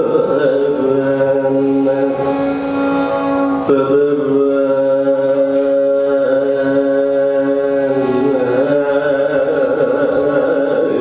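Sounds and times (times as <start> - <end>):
man singing long note: 0.0 - 11.0.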